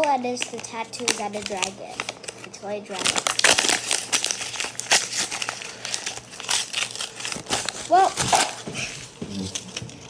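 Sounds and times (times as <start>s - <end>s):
paper crinkling: 0.0s - 10.0s.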